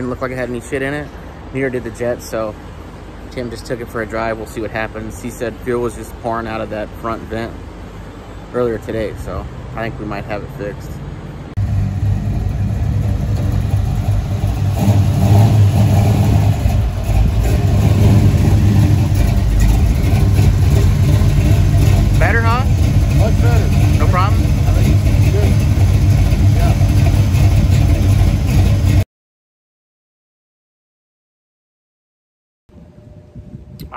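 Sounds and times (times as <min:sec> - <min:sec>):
car engine idling: 0:11.6 - 0:29.0.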